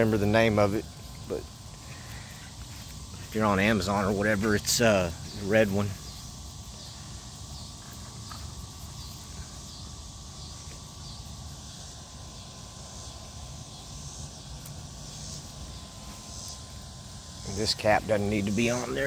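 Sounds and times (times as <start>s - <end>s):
faint steady whine: 0.0s - 19.0s
insect chorus: 0.0s - 19.0s.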